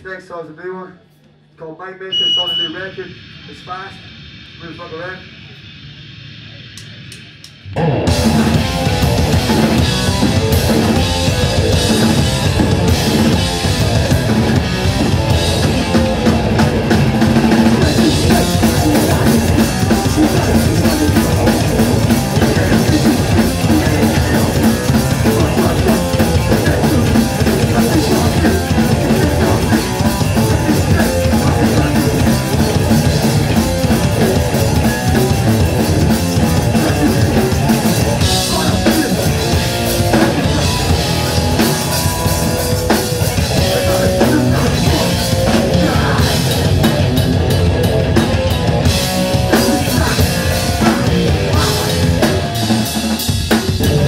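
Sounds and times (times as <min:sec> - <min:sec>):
punk band playing live: 0:02.2 - 0:04.6, 0:05.3 - 0:54.0.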